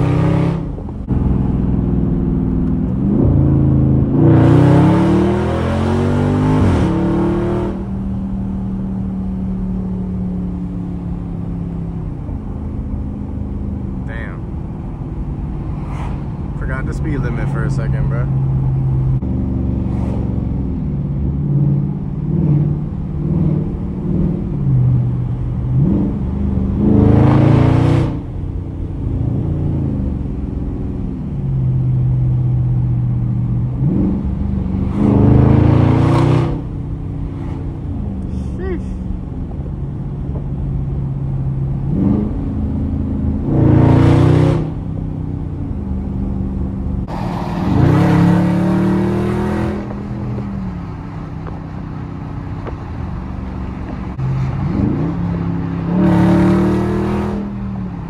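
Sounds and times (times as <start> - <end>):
car engine accelerating from inside cabin: 0.0 - 14.2, 17.4 - 51.6, 53.8 - 58.0.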